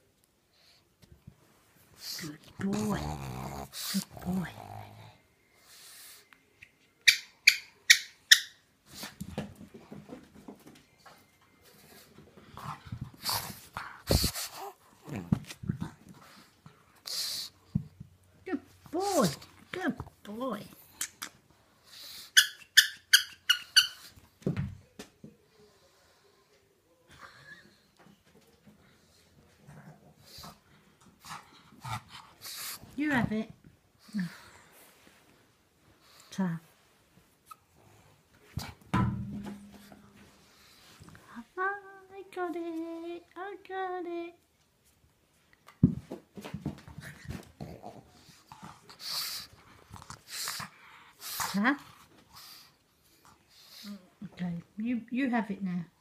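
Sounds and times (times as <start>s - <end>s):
pug breathing noisily: 12.6s - 14.9s.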